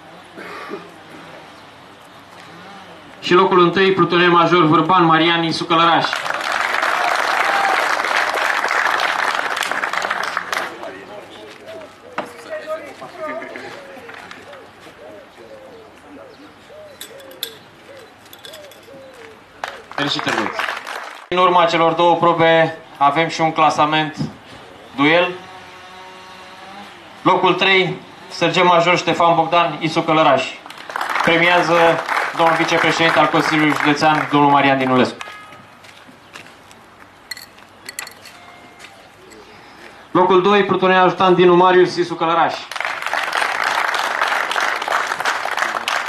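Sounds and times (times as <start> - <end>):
faint low cooing: 13.5 - 20.0
light metallic clinks: 17.0 - 19.1, 37.3 - 38.4.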